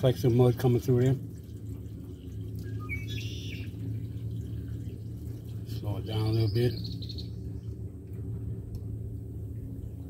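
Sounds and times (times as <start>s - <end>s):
water pump electric hum: 0.0s - 10.0s
bird chirping: 2.6s - 3.8s, 6.0s - 7.8s.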